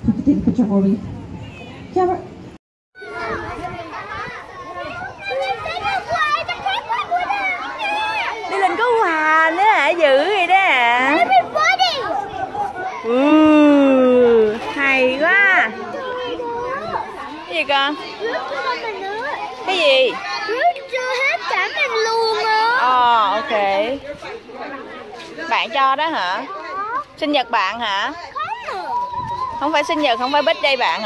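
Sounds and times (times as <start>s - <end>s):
children talking and calling out: 3.0s - 31.0s.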